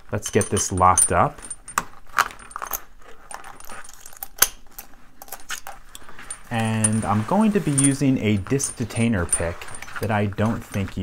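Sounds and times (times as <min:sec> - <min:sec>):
metal chain clinking and rattling: 0:00.0 - 0:11.0.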